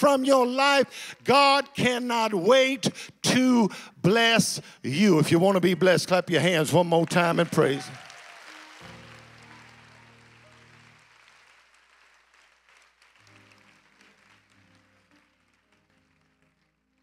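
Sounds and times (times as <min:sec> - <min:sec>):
congregation applause: 0:06.3 - 0:17.0.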